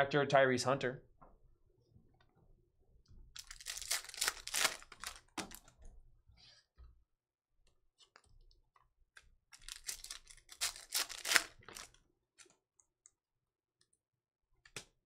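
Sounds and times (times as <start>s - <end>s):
foil wrappers crinkling and tearing: 3.4s - 5.4s, 9.6s - 12.0s.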